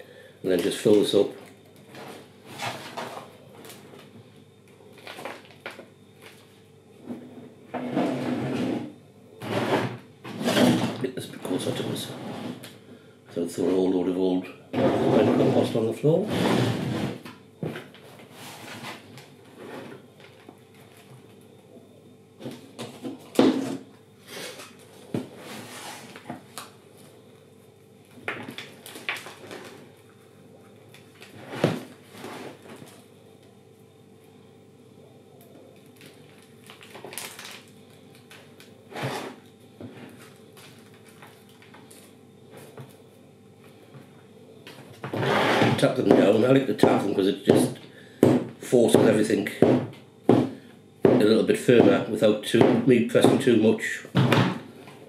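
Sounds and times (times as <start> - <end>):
compost rustling and scraping: 25.3 - 26.3.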